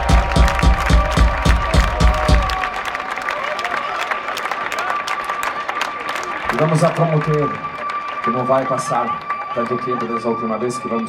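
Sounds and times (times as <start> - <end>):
kick drum thumping: 0.0 - 2.6
crowd cheering and applauding: 0.0 - 11.0.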